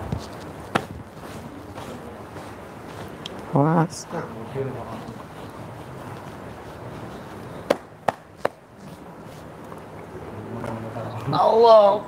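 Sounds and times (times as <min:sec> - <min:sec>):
sharp taps: 0:07.6 - 0:08.6.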